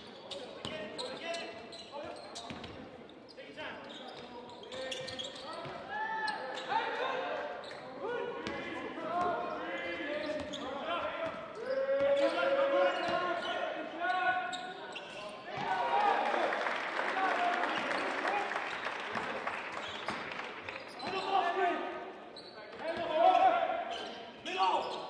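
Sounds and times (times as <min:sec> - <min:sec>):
shoes squeaking on court: 0:00.0 - 0:06.8, 0:09.3 - 0:15.7, 0:19.7 - 0:21.6, 0:22.2 - 0:25.0
crowd cheering and applauding: 0:15.7 - 0:20.8.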